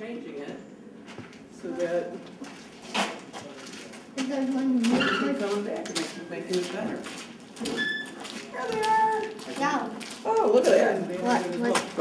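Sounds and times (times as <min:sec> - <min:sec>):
people talking: 0:03.4 - 0:07.0, 0:08.5 - 0:12.0.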